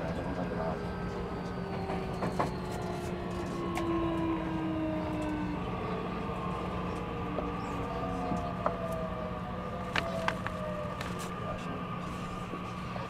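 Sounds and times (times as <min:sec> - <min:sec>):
wheels rumbling on rail: 0:00.0 - 0:13.0.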